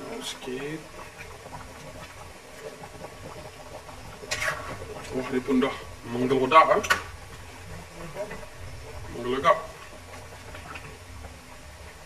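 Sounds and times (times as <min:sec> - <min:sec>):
curry bubbling in a pan: 0:00.0 - 0:12.0.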